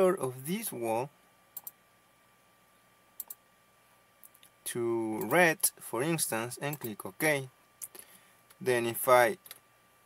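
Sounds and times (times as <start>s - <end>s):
computer mouse clicks: 1.6s - 1.8s, 3.2s - 3.4s.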